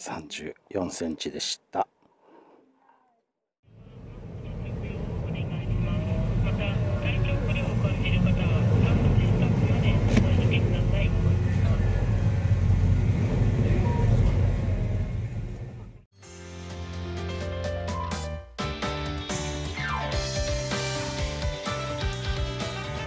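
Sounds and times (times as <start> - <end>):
ferry engines rumbling: 3.7 - 16.1
people's voices: 3.8 - 12.5.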